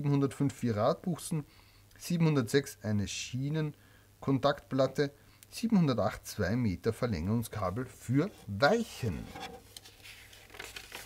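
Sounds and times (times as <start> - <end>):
paper page rustling: 8.2 - 11.0.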